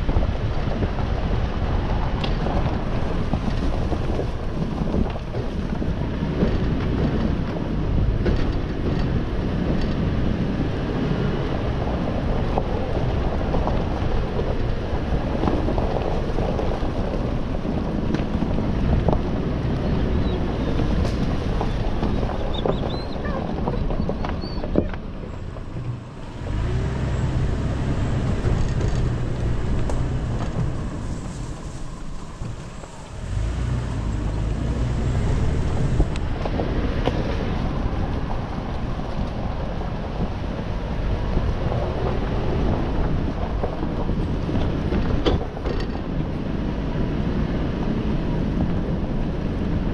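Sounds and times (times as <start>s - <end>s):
engine and tyres rumbling: 0.0s - 49.9s.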